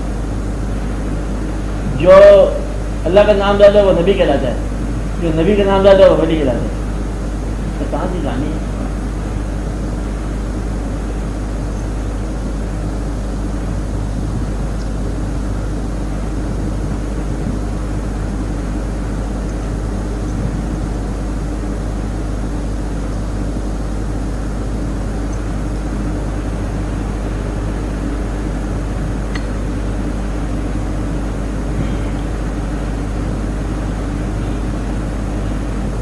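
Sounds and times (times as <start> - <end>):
low hum with hiss: 0.0 - 36.0.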